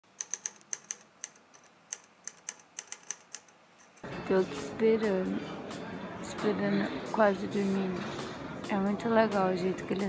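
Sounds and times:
sharp irregular clicks: 0:00.1 - 0:04.0.

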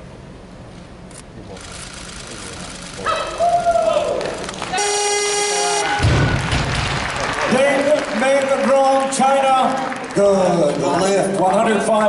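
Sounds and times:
arena crowd shouting: 0:03.0 - 0:04.8
crowd cheering: 0:03.0 - 0:12.0
electronic buzzer: 0:04.8 - 0:05.9.

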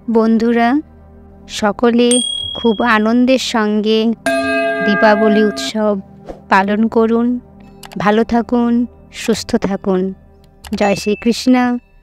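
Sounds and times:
background music: 0:00.0 - 0:12.0
bright high ding: 0:02.1 - 0:03.2, 0:04.3 - 0:05.9
person speaking: 0:02.1 - 0:03.3, 0:04.3 - 0:06.0.

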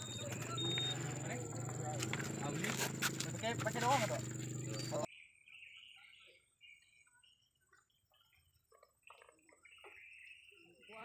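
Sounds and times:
people talking: 0:00.0 - 0:05.1.

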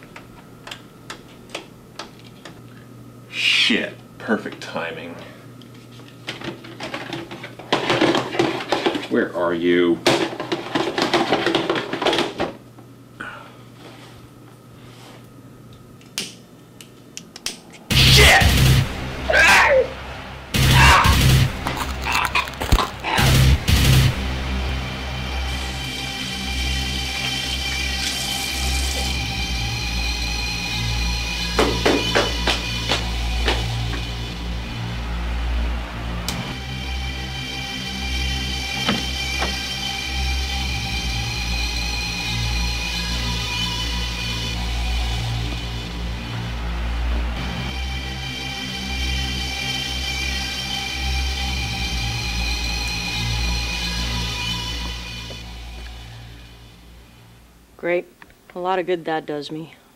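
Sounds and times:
held tones over low pulse: 0:17.9 - 0:22.1, 0:22.9 - 0:57.7
loud sudden music stabs: 0:17.9 - 0:56.9.

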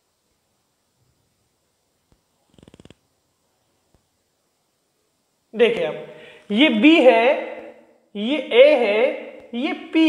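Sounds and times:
marker squeaking on whiteboard: 0:02.5 - 0:03.0.

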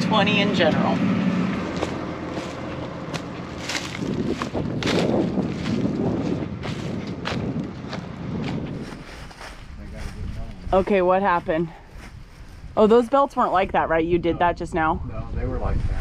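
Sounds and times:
low wind: 0:00.0 - 0:16.0
footsteps crunching on stubble: 0:01.4 - 0:12.8.

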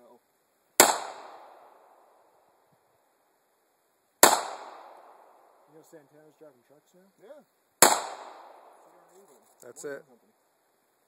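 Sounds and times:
pistol shot: 0:00.8 - 0:02.0, 0:04.2 - 0:05.6, 0:07.8 - 0:08.8.

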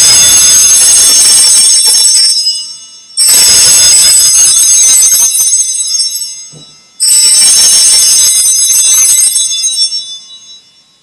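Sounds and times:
altar bells ringing: 0:00.0 - 0:11.0.

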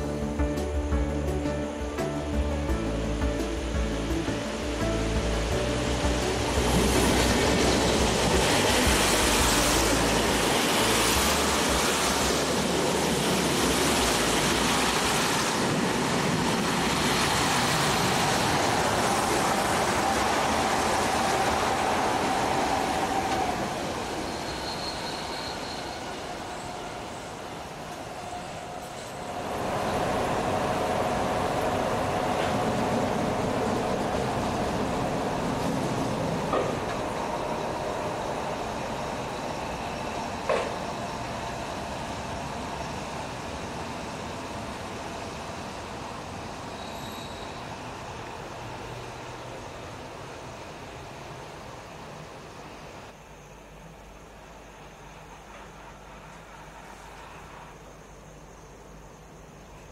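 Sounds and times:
background music: 0:00.0 - 0:14.7
train wheels rattling on rails: 0:06.0 - 0:50.3.

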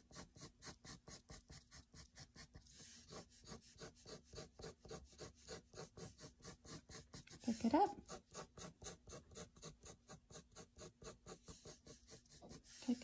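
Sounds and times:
pencil scratching on paper: 0:00.0 - 0:13.0.

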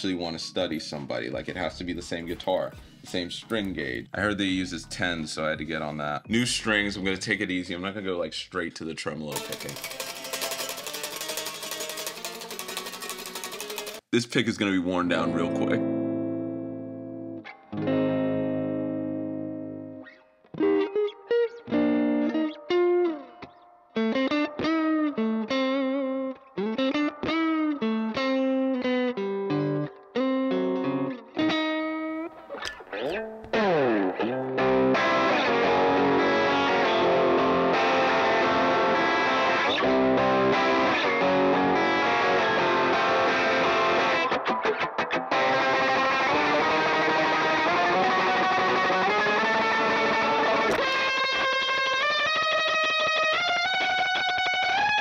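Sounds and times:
distorted electric guitar: 0:09.3 - 0:14.1, 0:15.3 - 0:55.0.

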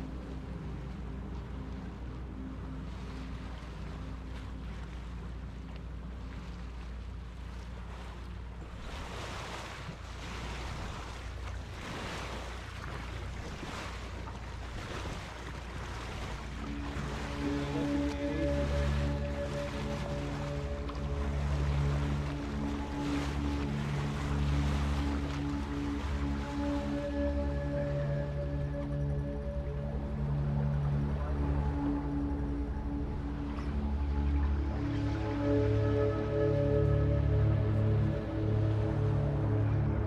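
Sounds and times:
boat engine droning: 0:00.0 - 0:40.0
water rushing along hull: 0:00.0 - 0:40.0
steady low hum: 0:10.1 - 0:40.0.

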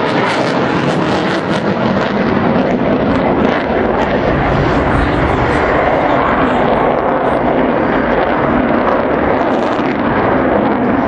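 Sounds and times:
fighter jet engine rumble: 0:00.0 - 0:11.0.

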